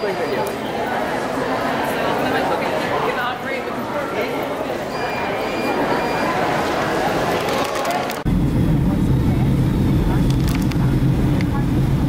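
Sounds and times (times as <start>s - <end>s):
jet airliner cabin drone: 8.1s - 12.0s.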